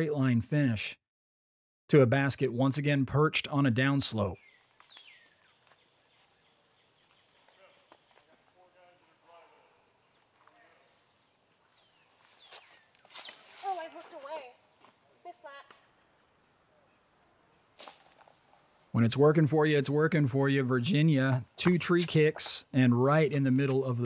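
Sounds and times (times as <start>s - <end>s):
woodland ambience: 3.4s - 24.0s
person speaking: 19.0s - 24.0s
faint voices: 20.7s - 21.4s.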